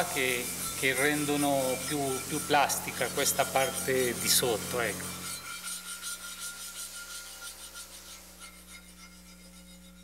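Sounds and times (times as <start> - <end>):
rubbing strokes on marble: 0.0 - 10.0.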